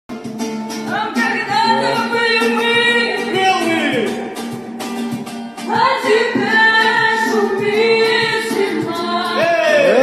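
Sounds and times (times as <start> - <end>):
acoustic guitar strumming: 0.1 - 10.0
man singing: 1.5 - 4.4, 9.2 - 10.0.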